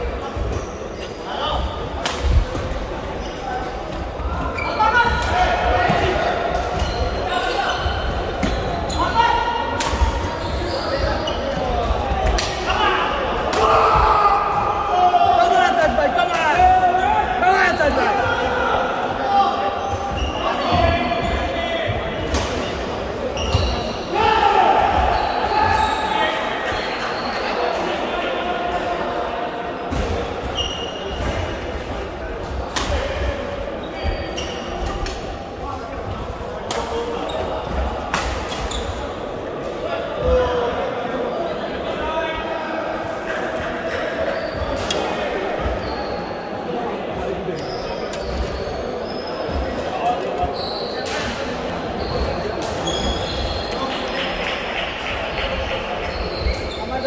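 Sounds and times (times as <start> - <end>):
people talking: 0.0 - 57.0.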